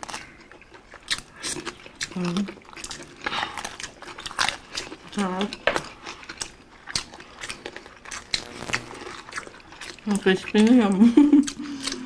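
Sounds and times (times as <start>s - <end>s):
crunching and chewing food: 0.0s - 12.0s.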